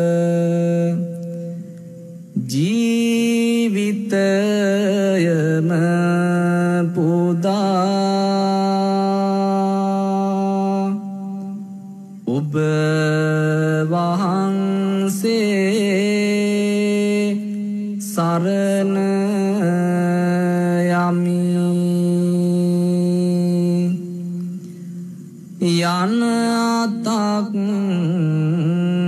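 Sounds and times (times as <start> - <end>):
man chanting: 0.0 - 29.0.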